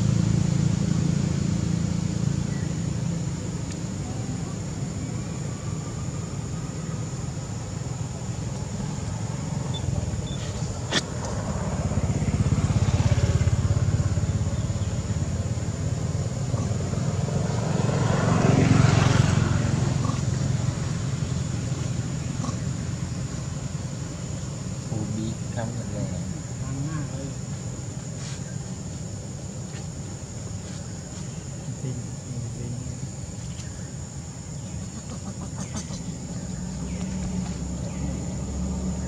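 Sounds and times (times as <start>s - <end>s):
road traffic rumble: 0.0s - 39.0s
vehicles passing: 0.0s - 39.0s.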